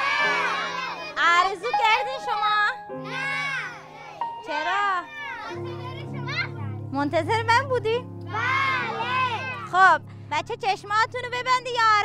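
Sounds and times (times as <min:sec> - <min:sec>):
children calling out: 0:00.0 - 0:01.9, 0:03.0 - 0:06.8, 0:08.3 - 0:09.8
background music: 0:00.0 - 0:12.0.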